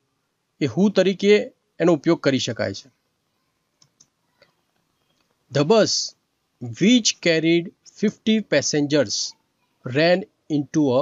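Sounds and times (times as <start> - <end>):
man speaking: 0.6 - 2.9, 5.5 - 11.0
faint clicks: 3.7 - 5.4.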